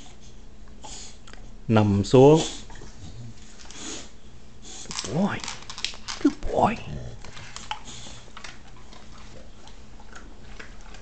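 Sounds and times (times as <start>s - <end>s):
dog chewing a treat: 4.9s - 11.0s.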